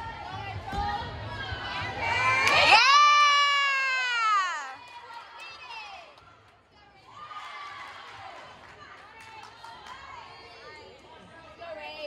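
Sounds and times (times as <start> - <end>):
spectators cheering: 2.1 - 5.3.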